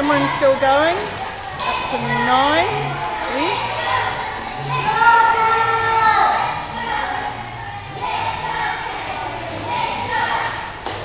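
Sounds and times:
echoing indistinct voices: 0.0 - 11.0.

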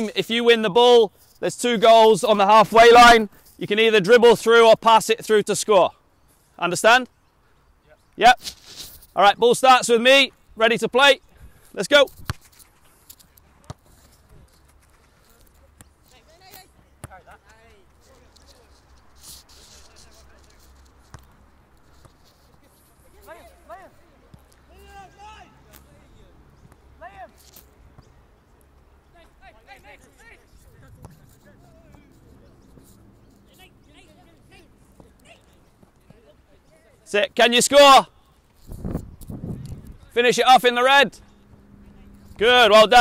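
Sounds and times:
distant footballers shouting: 22.5 - 38.5, 40.0 - 43.0.

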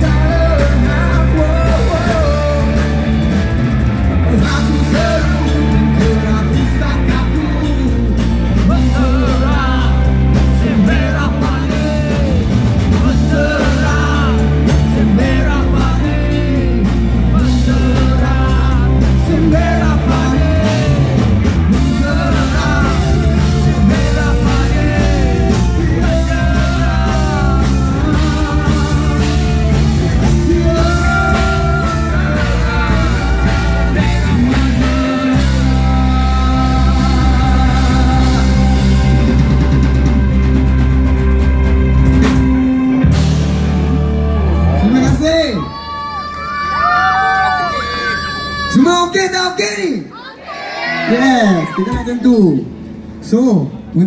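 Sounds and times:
man singing: 0.0 - 3.3, 4.2 - 40.0
sung vocal line: 0.0 - 3.4, 4.1 - 40.6
live rock band: 0.0 - 54.0.

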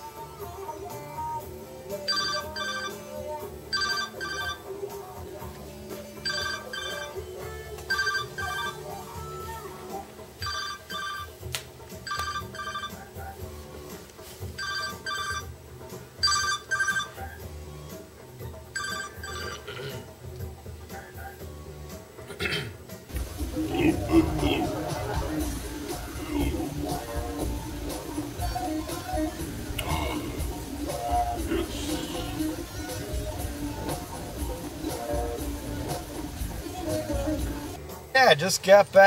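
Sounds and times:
phone ringtone double beeps: 2.0 - 4.6, 6.2 - 9.0, 10.4 - 11.4, 12.0 - 13.1, 14.6 - 15.5, 16.2 - 17.4, 18.8 - 19.7.

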